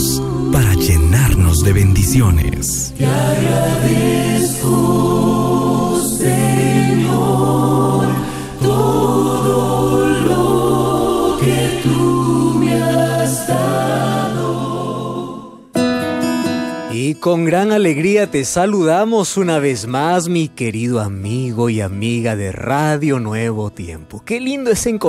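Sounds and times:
choir singing held chords: 0.0 - 15.8.

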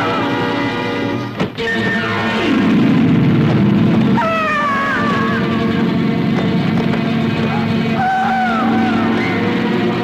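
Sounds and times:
soundtrack music: 0.0 - 10.0.

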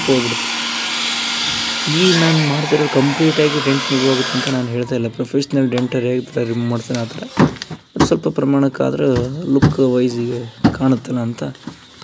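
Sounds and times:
hair dryer running: 0.0 - 4.7.

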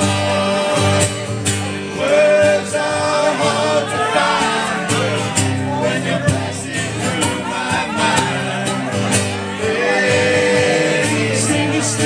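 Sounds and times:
strummed guitar chords: 0.0 - 12.0.

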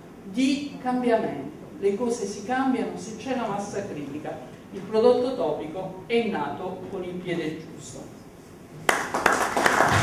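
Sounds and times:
audience applause: 8.9 - 10.0.

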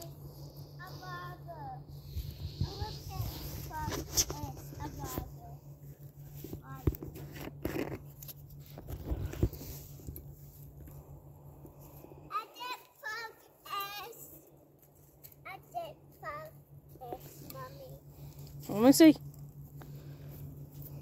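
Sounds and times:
distant children's voices: 0.0 - 7.4.

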